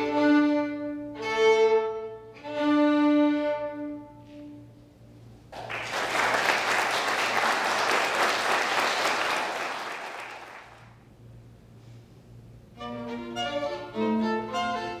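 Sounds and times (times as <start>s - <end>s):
audience applauding: 5.5s - 10.9s.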